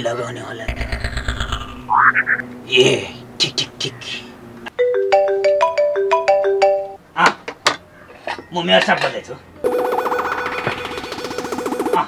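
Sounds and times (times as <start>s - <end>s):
electronic phone ringtone: 4.8s - 7.0s, 9.6s - 12.0s.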